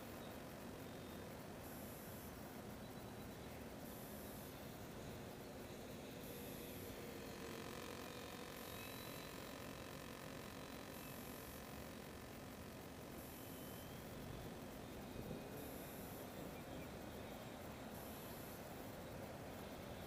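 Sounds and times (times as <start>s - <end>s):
background hiss: 0.0s - 20.0s
electric model plane motor whine: 3.0s - 18.7s.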